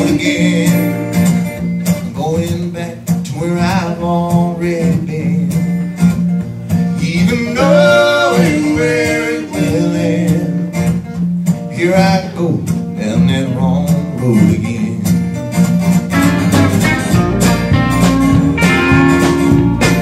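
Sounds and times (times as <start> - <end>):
man singing: 0.0 - 1.2, 2.1 - 5.6, 7.0 - 10.7, 11.8 - 15.2
strummed acoustic guitar: 0.0 - 20.0.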